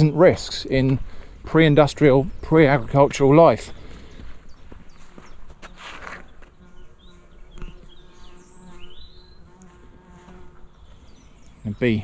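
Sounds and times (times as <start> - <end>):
bee buzzing: 5.0 - 11.6.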